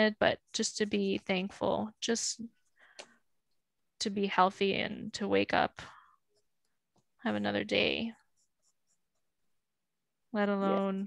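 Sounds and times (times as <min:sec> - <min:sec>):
pencil strokes on paper: 0:00.1 - 0:03.6, 0:05.5 - 0:10.0
person speaking: 0:10.4 - 0:11.0.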